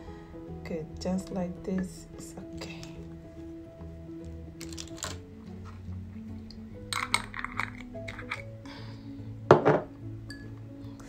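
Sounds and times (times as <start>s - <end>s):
soft background music: 0.0s - 11.0s
sticks clinking against glass: 6.9s - 8.4s, 10.3s - 10.5s.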